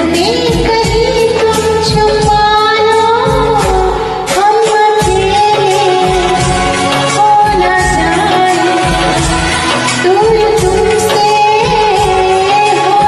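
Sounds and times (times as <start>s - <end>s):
karaoke backing track: 0.0s - 13.0s
woman singing: 0.0s - 13.0s.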